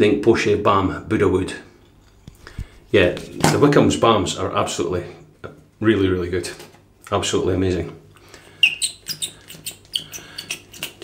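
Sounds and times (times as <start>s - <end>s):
pump dispenser clicking and squeaking: 8.4s - 11.0s.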